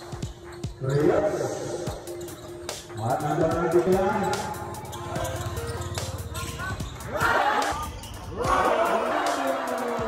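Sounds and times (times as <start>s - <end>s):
music: 0.0s - 10.0s
voices: 3.0s - 10.0s.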